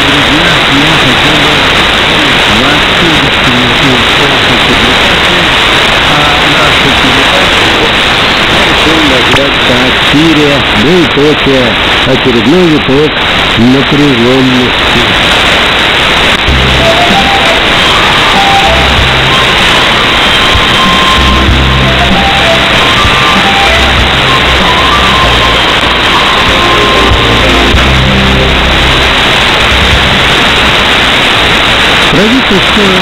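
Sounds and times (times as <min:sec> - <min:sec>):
music over radio: 0:00.0 - 0:33.0
radio static hiss: 0:00.0 - 0:33.0.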